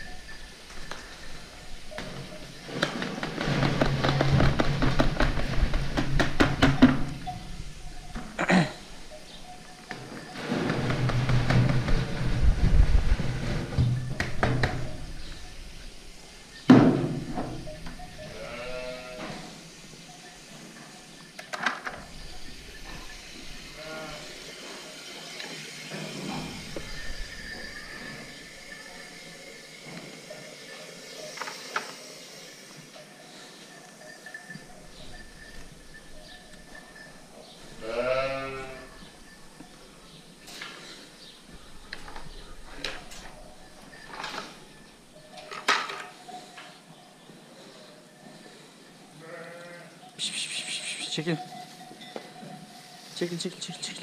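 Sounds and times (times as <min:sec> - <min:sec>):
sheep bleating: 0:18.2 - 0:19.6, 0:23.7 - 0:24.4, 0:37.8 - 0:39.0, 0:49.2 - 0:50.0.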